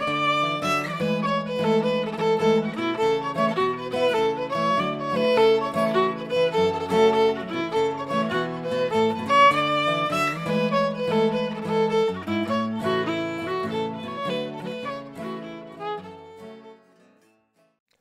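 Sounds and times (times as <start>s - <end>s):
fiddle playing a jig: 0.0s - 17.2s
acoustic guitar chords: 0.0s - 17.4s.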